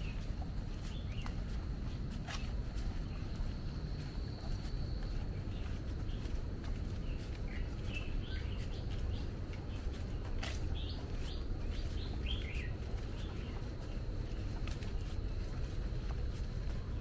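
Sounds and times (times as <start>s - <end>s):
birds chirping: 0.0s - 17.0s
footsteps on paved path: 0.0s - 17.0s.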